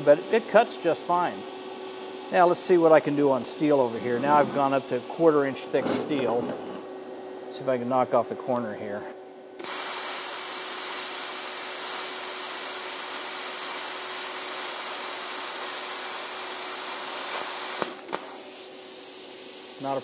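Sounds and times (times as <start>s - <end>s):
plasma cutter hissing: 9.6s - 20.0s.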